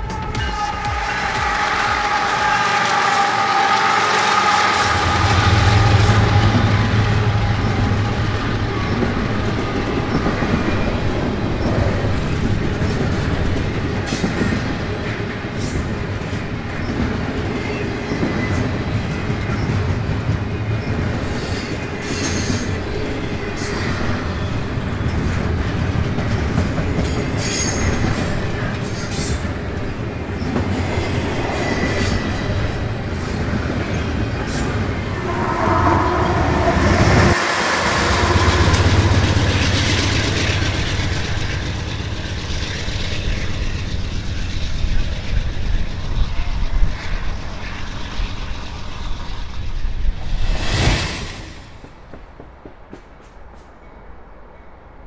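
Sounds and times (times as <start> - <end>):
diesel locomotive engine rumbling: 0.0 - 50.9
wheels squealing on track: 30.4 - 50.0.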